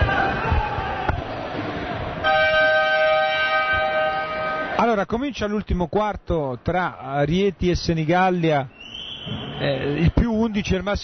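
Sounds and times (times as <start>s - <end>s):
scoreboard horn blast: 2.2s - 4.8s.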